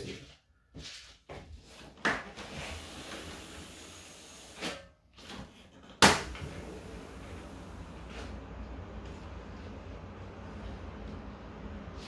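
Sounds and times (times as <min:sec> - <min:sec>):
street traffic hum: 0:06.4 - 0:12.0.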